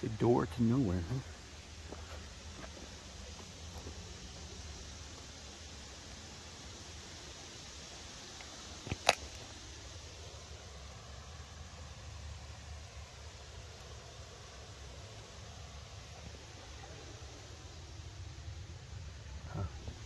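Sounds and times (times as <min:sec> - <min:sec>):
faint hiss: 0:00.0 - 0:20.0
low outdoor rumble: 0:00.0 - 0:20.0.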